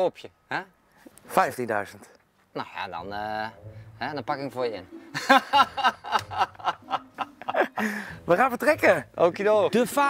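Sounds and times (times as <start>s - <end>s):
man chuckling: 5.1s - 8.2s.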